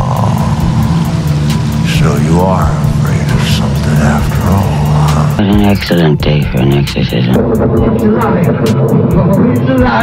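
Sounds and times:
fast ticking beat: 0.0s - 10.0s
loud low drone: 0.0s - 10.0s.

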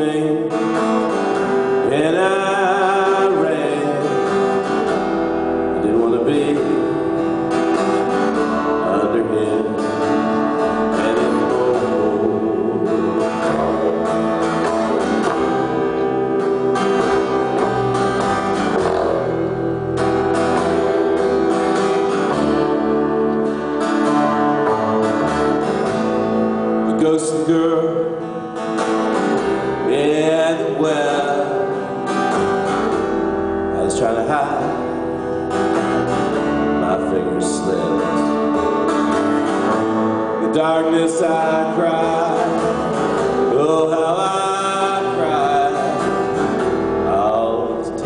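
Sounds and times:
acoustic guitar: 0.0s - 48.0s
double bass: 7.5s - 27.0s.

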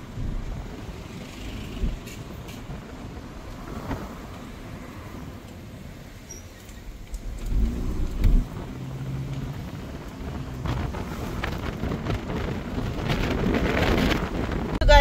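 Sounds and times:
street traffic rumble: 0.0s - 15.0s
wind on microphone: 1.7s - 4.3s, 6.8s - 15.0s.

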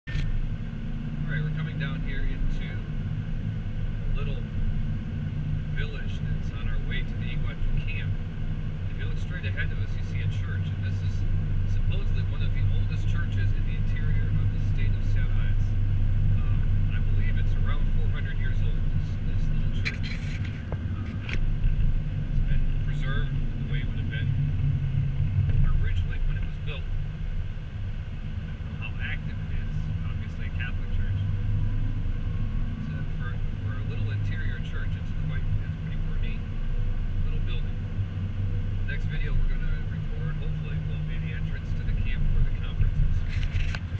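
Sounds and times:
car engine and tyres rumbling: 0.0s - 43.9s.

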